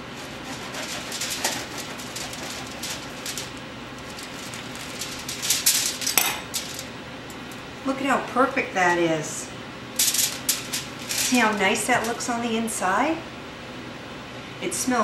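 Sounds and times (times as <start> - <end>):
knife sawing through bread crust: 0.0 - 3.5.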